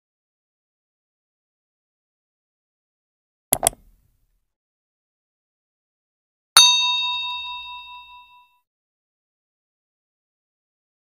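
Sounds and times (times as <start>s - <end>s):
bell ding: 6.6s - 8.6s.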